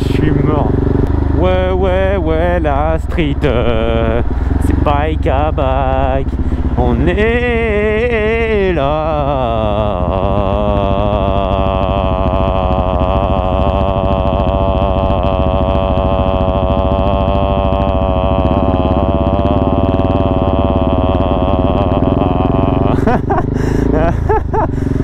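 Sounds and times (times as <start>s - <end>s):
motorcycle engine cruising: 0.0s - 25.0s.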